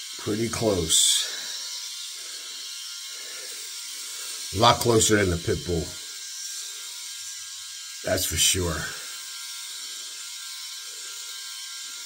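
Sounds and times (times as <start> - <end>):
electric shaver running: 0.0 - 12.0.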